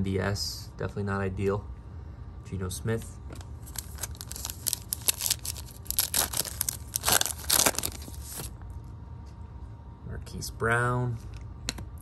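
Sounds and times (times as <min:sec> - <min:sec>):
foil wrapper tearing and crinkling: 0:03.6 - 0:08.5.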